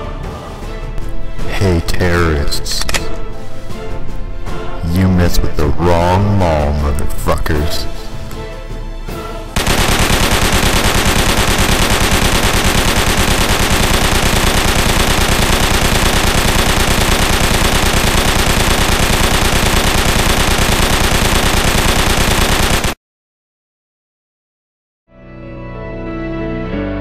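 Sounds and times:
automatic machine-gun fire: 0:09.6 - 0:23.0.

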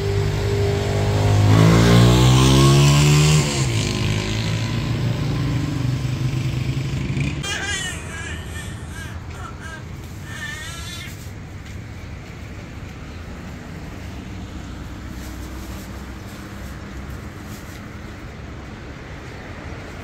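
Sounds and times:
motor vehicle engine accelerating: 0:00.0 - 0:20.0.

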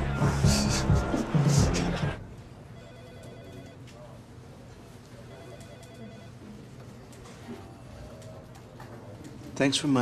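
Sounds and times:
telephone ringing faintly: 0:02.5 - 0:04.2, 0:05.1 - 0:07.4.

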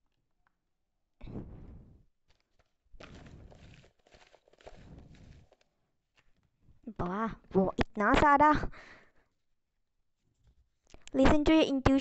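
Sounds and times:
cards rustling and sliding: 0:02.3 - 0:06.5.

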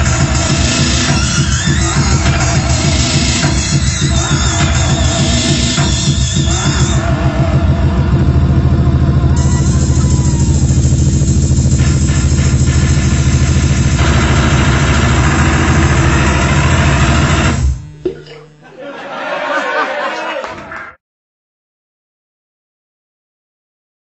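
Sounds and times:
loud distorted live band music: 0:00.0 - 0:18.0.

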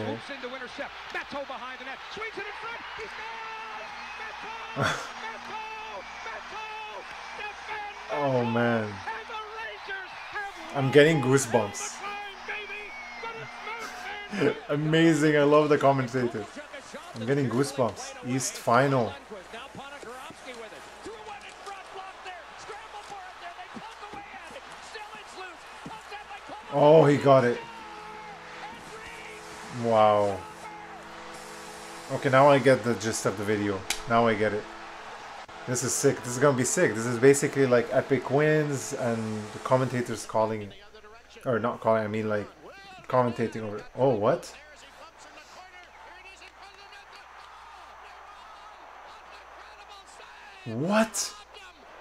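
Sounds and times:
commentator talking: 0:00.0 - 0:30.7, 0:32.1 - 0:34.6, 0:35.6 - 0:47.2, 0:49.2 - 0:51.6
arena crowd noise: 0:00.0 - 0:52.0
hockey game sound: 0:00.0 - 0:52.0
man's loud voice: 0:07.5 - 0:19.8.

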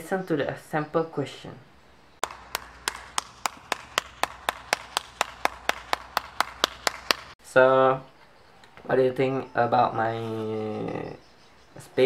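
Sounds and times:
person clapping hands: 0:02.2 - 0:07.4.

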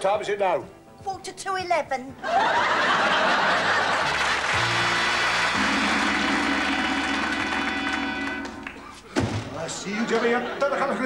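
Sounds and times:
audience laughter: 0:02.2 - 0:08.1, 0:09.9 - 0:11.0
audience applause: 0:02.3 - 0:09.0
musical sting with held chords: 0:04.6 - 0:08.9.

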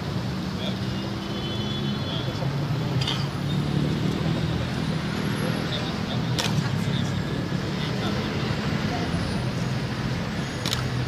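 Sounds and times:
road traffic hum: 0:00.0 - 0:11.0
people's voices: 0:00.4 - 0:11.0.

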